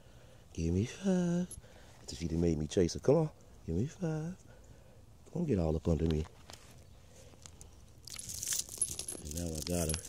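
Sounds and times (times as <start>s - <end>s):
rustling: 5.9s - 10.0s
light metallic jingling: 7.5s - 10.0s.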